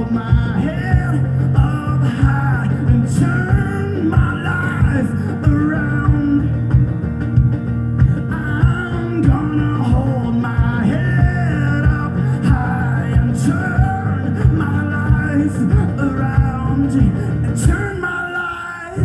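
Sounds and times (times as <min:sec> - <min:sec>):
steady drum beat: 0:00.0 - 0:18.2
electric guitar: 0:00.0 - 0:19.0
live rock band playing: 0:00.0 - 0:19.0.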